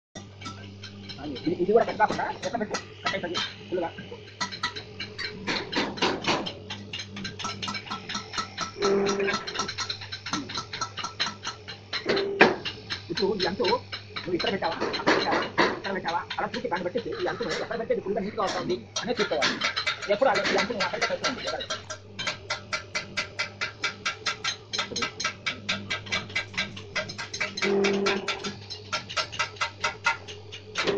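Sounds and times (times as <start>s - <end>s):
machine motor hum: 0.2s - 30.9s
machine clicking and clattering: 4.4s - 30.9s.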